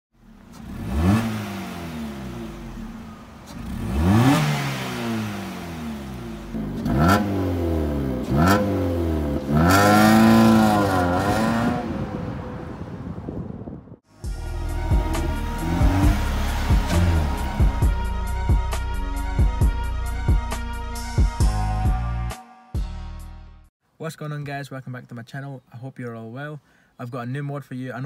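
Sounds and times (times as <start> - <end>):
car exhaust revving: 0.2 - 12.9, 14.1 - 20.8
car engine idling: 14.1 - 19.3.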